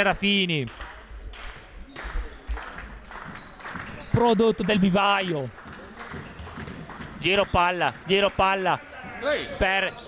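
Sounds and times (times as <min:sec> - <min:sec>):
knocks on court floor: 0:05.6 - 0:07.4.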